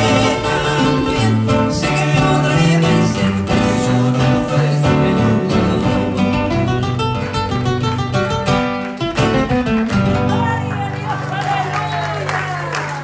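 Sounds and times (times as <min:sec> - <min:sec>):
acoustic guitars strumming: 0:00.0 - 0:11.7.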